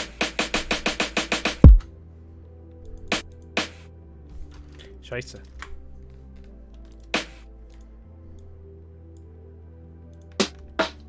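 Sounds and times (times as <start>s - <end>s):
deep kick drum: 1.6s - 1.8s.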